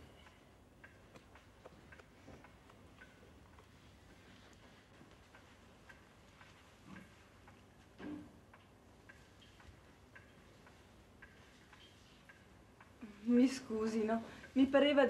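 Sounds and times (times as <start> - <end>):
clock ticking faintly: 0.0 - 15.0.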